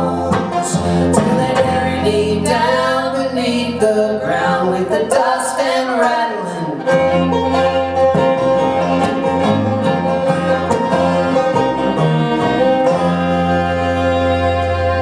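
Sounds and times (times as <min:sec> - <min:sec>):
fiddle bowed notes: 0:00.0 - 0:15.0
rapid banjo picking: 0:00.0 - 0:15.0
strummed acoustic guitar: 0:00.0 - 0:15.0
upright bass: 0:00.0 - 0:15.0.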